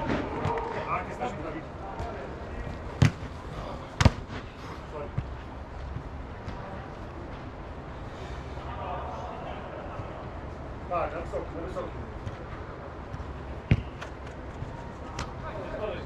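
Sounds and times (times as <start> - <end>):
distant shouts echoing: 0.0 - 2.7.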